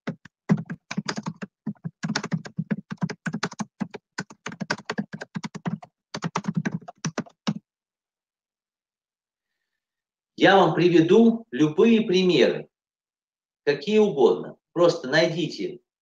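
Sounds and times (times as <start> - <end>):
typing on computer keyboard: 0.0 - 7.6.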